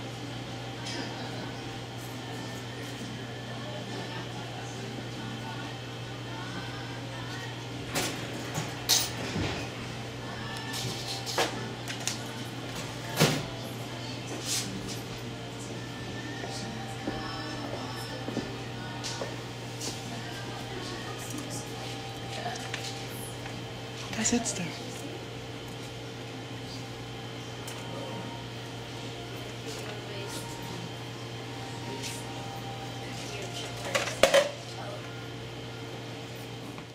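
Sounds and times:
shop interior hum: 0:00.0 - 0:36.9.

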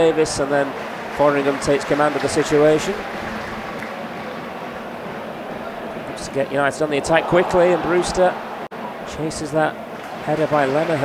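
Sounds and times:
stadium crowd hum: 0:00.0 - 0:11.0.

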